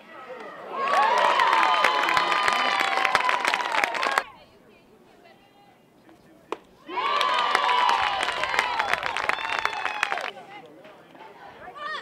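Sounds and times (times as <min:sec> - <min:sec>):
crowd shouting: 0:06.8 - 0:10.2.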